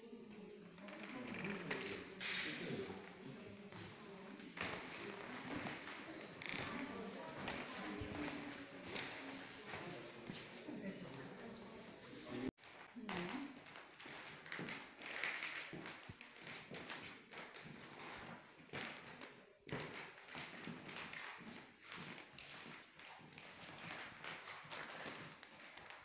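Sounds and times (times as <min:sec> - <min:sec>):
footsteps on wooden floor: 0:00.9 - 0:10.7.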